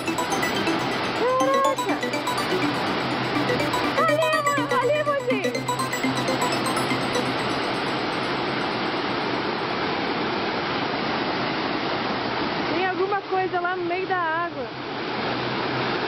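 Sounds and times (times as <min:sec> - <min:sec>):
person's voice: 0:03.6 - 0:05.7.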